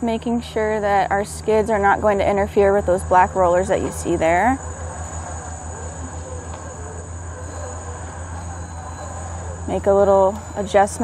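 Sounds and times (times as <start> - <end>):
pulsing low motor hum: 0.0 - 11.0
faint high-pitched tone: 1.0 - 11.0.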